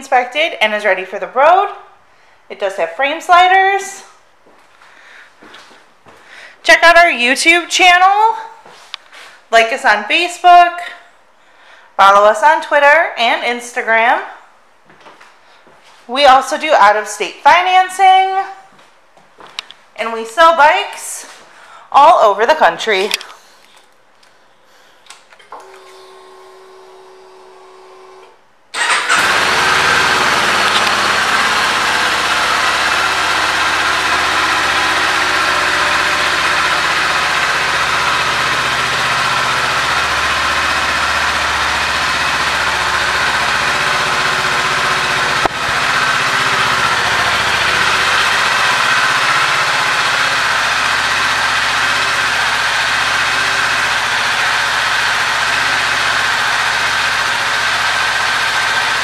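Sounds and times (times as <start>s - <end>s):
motorcycle engine starting and idling: 25.4s - 59.0s.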